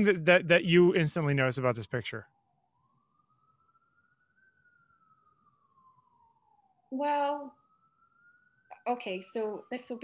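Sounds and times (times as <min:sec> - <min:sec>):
faint siren wailing: 0:00.0 - 0:10.0.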